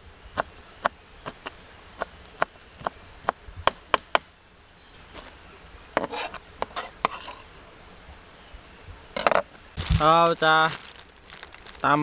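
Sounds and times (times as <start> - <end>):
high insect drone: 0.0 - 12.0.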